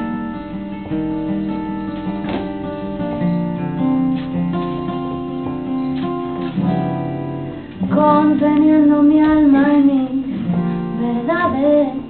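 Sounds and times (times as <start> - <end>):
acoustic guitar: 0.0 - 12.0
woman singing: 7.8 - 12.0.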